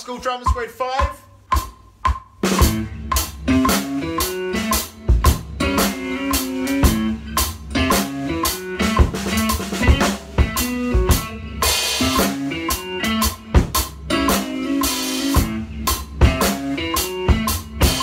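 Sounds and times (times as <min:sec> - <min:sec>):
acoustic drum kit groove: 0:00.0 - 0:18.0
pop backing track with guitar: 0:00.0 - 0:18.0.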